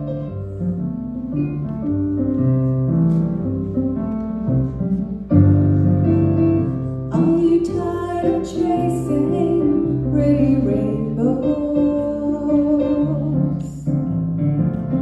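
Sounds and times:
piano chords: 0.0 - 15.0.

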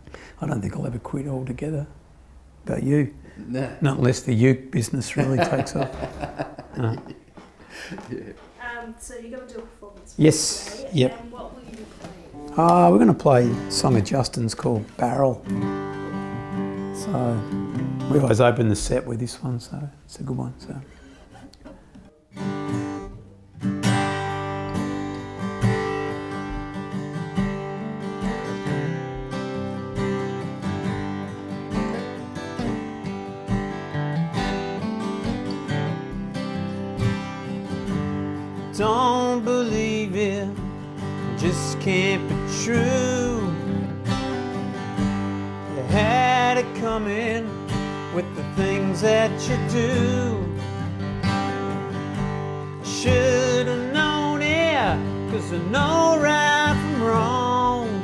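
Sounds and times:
acoustic guitars strumming chords: 2.2 - 19.5, 20.5 - 58.0
person singing: 38.8 - 40.6, 41.2 - 43.8, 45.7 - 50.6.

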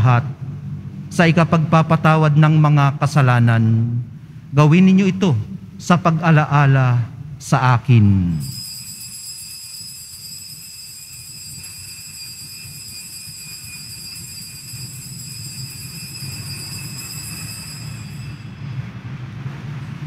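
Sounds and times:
low rumble: 0.0 - 8.6, 12.5 - 20.0
steady high tone: 8.2 - 19.3.

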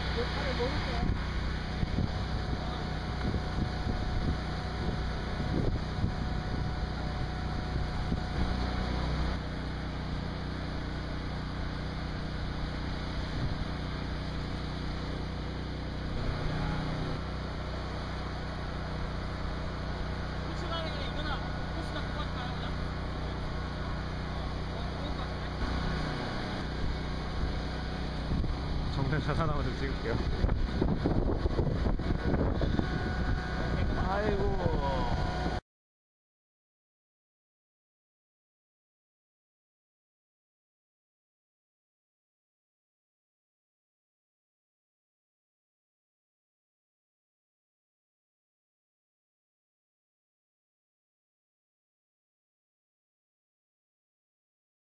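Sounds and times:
robot motors humming: 0.0 - 35.6.

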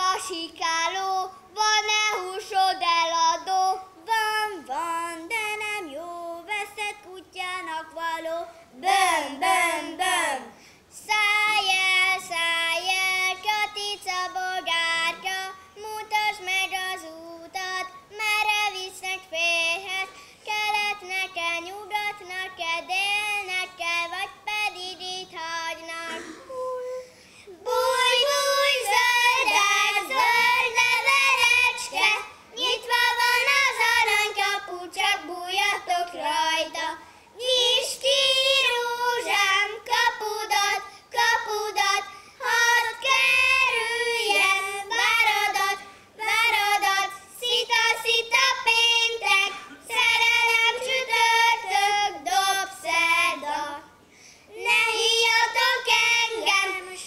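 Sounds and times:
boys singing: 0.0 - 27.0, 27.6 - 54.0, 54.6 - 57.0
girl singing: 0.0 - 57.0.

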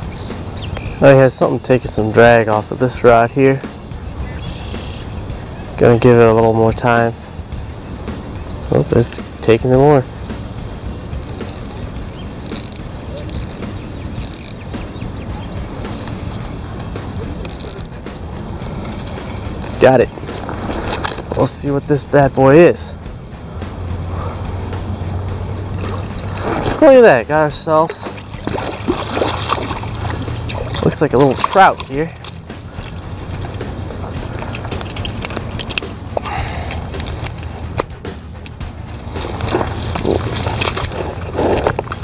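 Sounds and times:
light water splashing: 11.1 - 22.1, 25.6 - 42.0
small clicks: 11.2 - 13.6
fishing reel drag clicking: 11.2 - 14.6, 15.9 - 17.9.

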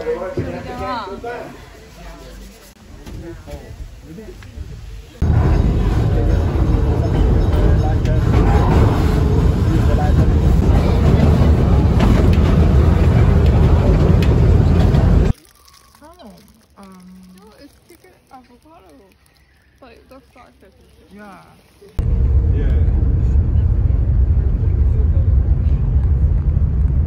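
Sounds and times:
wind rush on moving train: 4.6 - 15.3, 22.0 - 27.0.

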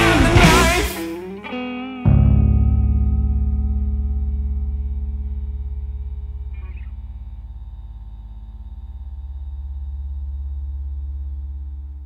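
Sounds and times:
sustained guitar and bass chord: 0.0 - 12.0.

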